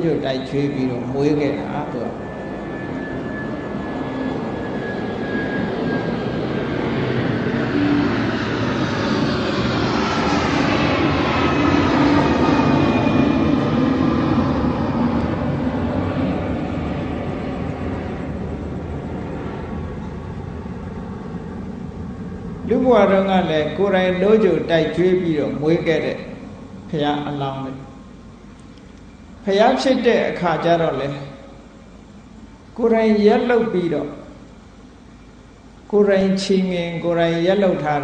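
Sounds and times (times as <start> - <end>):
airplane passing overhead: 0.0 - 38.0.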